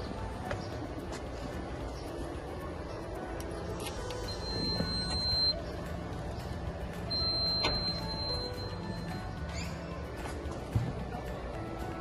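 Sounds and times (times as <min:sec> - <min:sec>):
low street rumble: 0:00.0 - 0:12.0
electronic door lock beeps: 0:04.3 - 0:05.6, 0:07.1 - 0:09.3.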